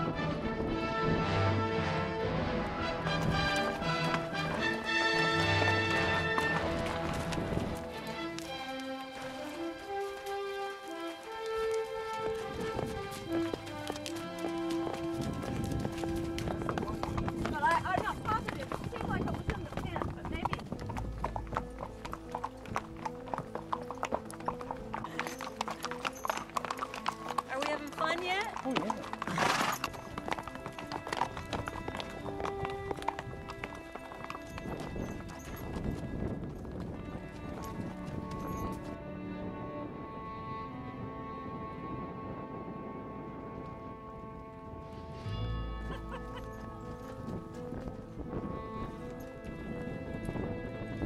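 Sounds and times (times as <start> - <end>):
background music with held notes: 0.0 - 51.0
horse hooves clip-clopping: 2.4 - 39.2, 42.5 - 51.0
voices: 17.4 - 20.7.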